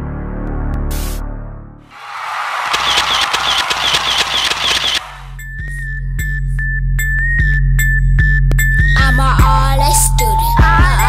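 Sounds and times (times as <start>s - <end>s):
camera shutter clicks: 2.6s - 5.3s.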